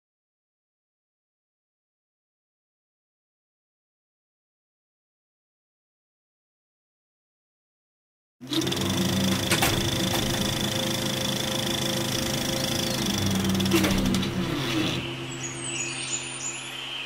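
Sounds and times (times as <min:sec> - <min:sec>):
rapid mechanical clatter: 0:08.4 - 0:15.0
projector motor hum: 0:08.4 - 0:15.6.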